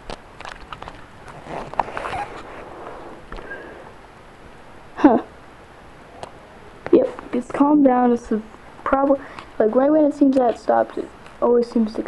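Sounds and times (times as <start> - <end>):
faint rustling: 0.0 - 4.3.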